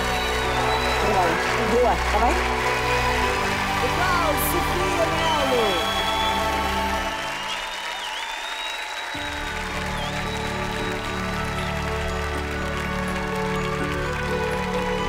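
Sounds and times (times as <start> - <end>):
audience applauding: 0.0 - 15.0
background music: 0.0 - 15.0.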